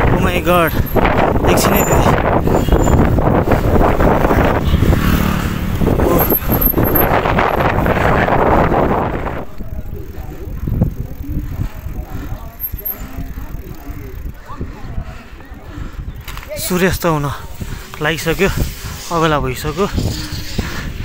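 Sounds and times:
street traffic: 0.0s - 21.0s
wind rushing on microphone: 0.0s - 21.0s
faint voices: 5.9s - 21.0s.

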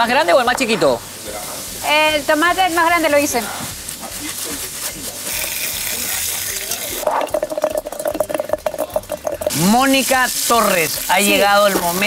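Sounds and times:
food sizzling in frying: 0.0s - 12.0s.

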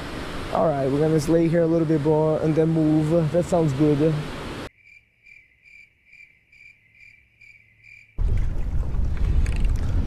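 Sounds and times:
low rumble of wind: 0.0s - 4.7s, 8.2s - 10.0s
crickets chirping: 4.7s - 8.2s.

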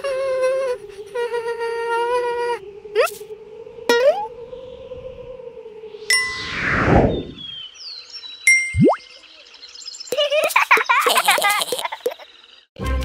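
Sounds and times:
falling whoosh: 3.8s - 7.6s.

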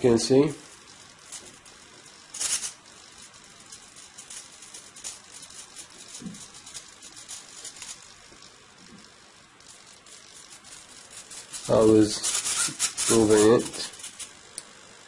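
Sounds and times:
small motor clicking and rattling: 0.6s - 15.0s.

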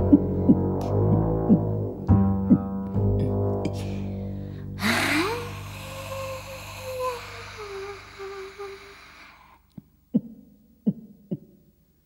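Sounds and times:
low double bass note: 0.0s - 7.4s
woman's breathy held vocal note: 3.8s - 9.7s.

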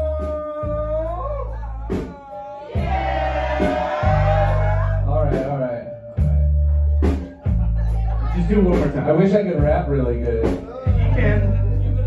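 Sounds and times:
live band deep bass notes: 0.0s - 12.0s.

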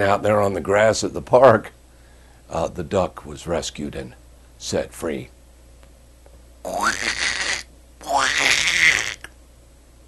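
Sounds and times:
man making hoarse vocal cries: 6.7s - 9.3s.

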